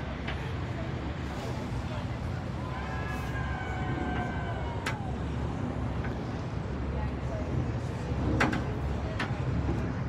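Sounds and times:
boat engine rumble: 0.0s - 10.0s
passing water: 0.0s - 10.0s.

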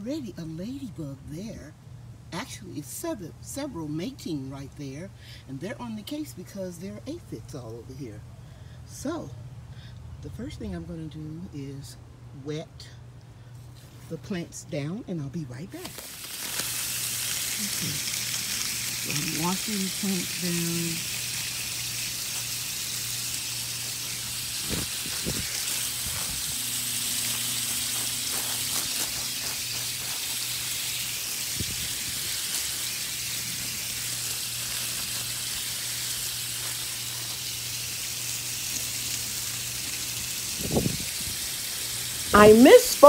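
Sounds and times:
water spraying onto plants: 15.8s - 43.0s.

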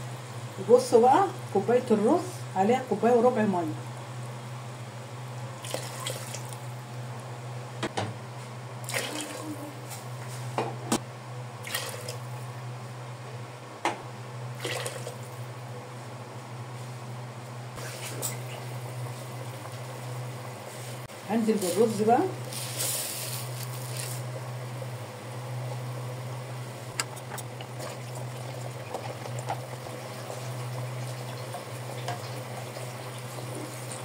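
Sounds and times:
steady low hum: 0.0s - 33.8s
water splashing into pot: 5.6s - 6.6s, 8.8s - 9.4s
sauce simmering: 22.4s - 34.0s.

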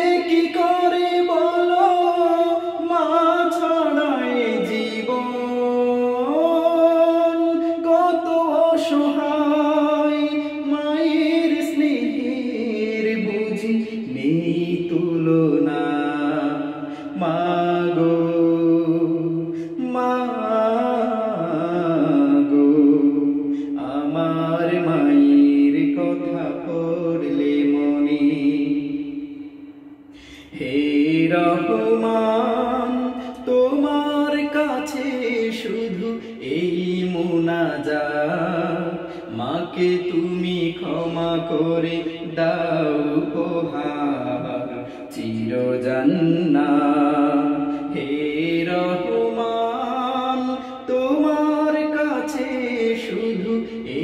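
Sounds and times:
man singing unaccompanied: 0.0s - 54.0s.

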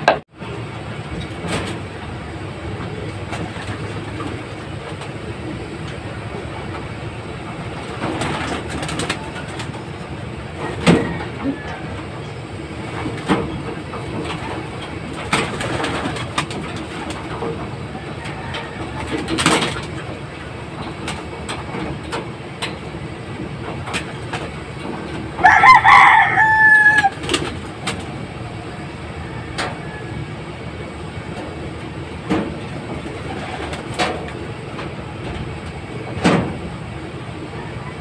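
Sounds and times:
pigeons cooing: 1.3s - 21.3s, 32.6s - 34.5s.

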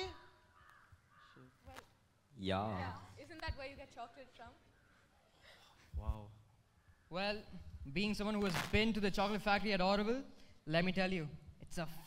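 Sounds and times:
faint crow cawing: 0.0s - 2.0s, 4.5s - 5.8s, 6.6s - 7.6s.

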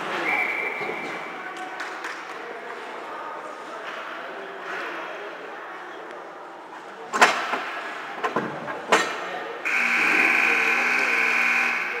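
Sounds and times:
arena buzzer: 9.7s - 12.0s.

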